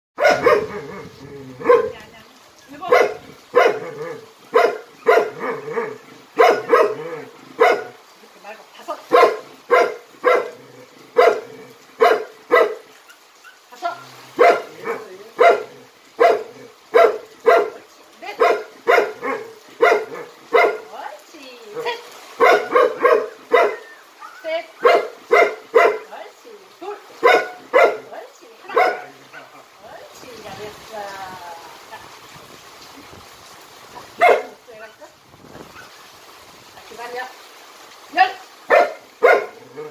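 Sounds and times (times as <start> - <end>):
dog barking: 0.2 - 2.0, 2.8 - 8.0, 9.1 - 10.6, 11.2 - 13.6, 14.4 - 20.9, 21.8 - 26.1, 27.0 - 29.7, 34.1 - 34.6, 38.7 - 39.9.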